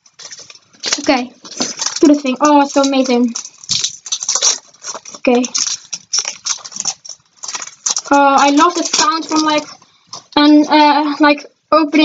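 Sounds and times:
foil wrapper tearing and crinkling: 0.0s - 10.8s.

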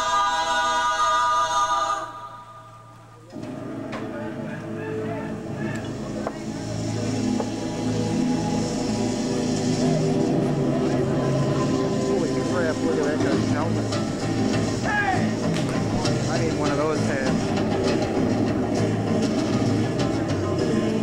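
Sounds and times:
stage-show music with low drone: 2.0s - 21.0s.

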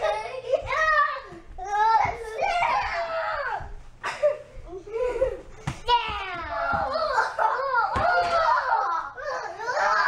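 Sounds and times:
children shrieking and yelling: 0.0s - 3.8s, 5.0s - 10.0s.

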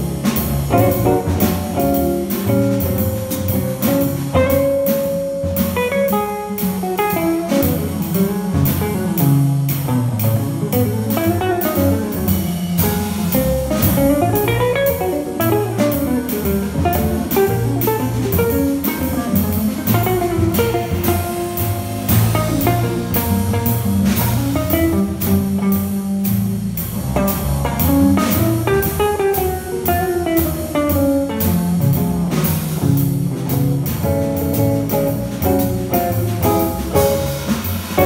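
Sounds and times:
drum kit keeping time: 0.0s - 38.0s
electric guitar melody: 0.0s - 38.0s
plucked double bass: 0.0s - 38.0s.

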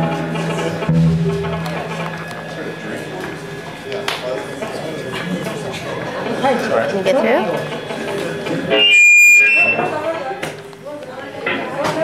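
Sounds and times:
voices chattering: 0.0s - 12.0s
high-pitched steady tone: 8.6s - 10.1s.

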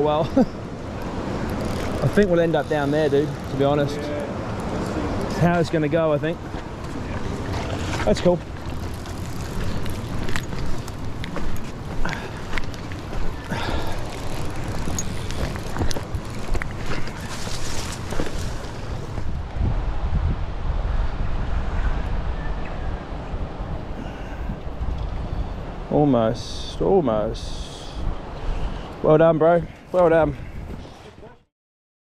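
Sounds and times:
river water rushing: 0.0s - 19.2s
wind buffeting microphone: 0.0s - 26.5s, 29.6s - 31.4s
footsteps on river stones: 6.4s - 19.4s.

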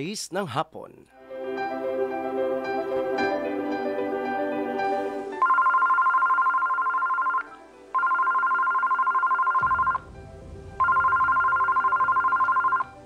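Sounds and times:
faint background music: 1.2s - 13.0s
warbling telephone ring: 5.4s - 10.0s, 10.8s - 13.0s.

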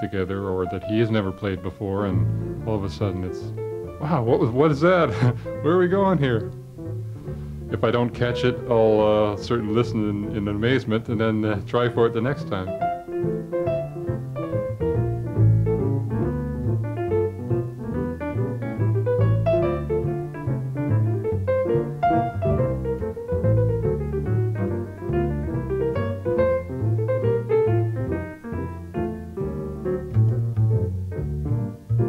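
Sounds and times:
double bass line: 0.0s - 32.0s
jazz piano: 0.0s - 32.0s.

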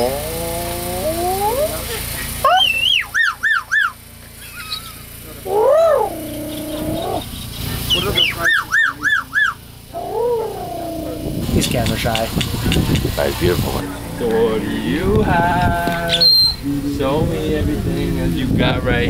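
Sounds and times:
animal calling in high notes: 2.4s - 7.2s.

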